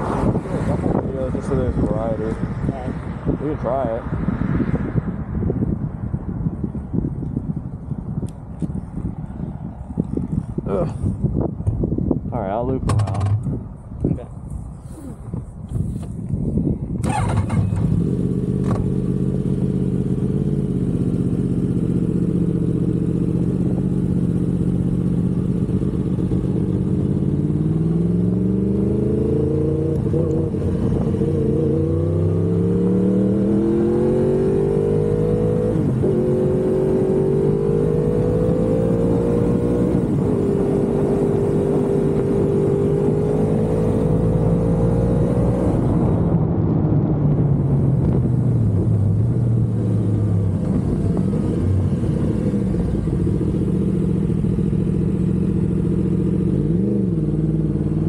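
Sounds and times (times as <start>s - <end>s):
motorcycle engine revving: 17.0s - 46.2s, 47.7s - 58.0s.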